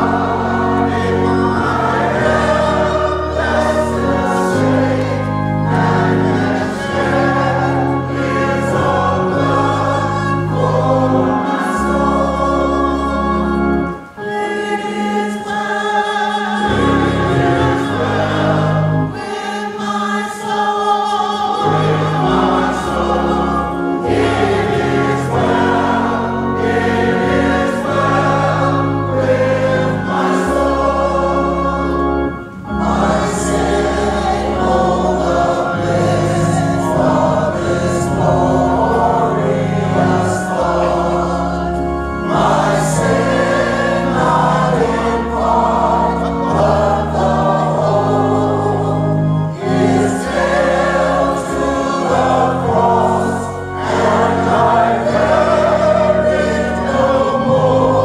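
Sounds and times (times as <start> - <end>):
low bass accompaniment notes: 0.0 - 14.0, 16.7 - 19.2, 21.6 - 58.0
church choir singing a hymn: 0.0 - 58.0.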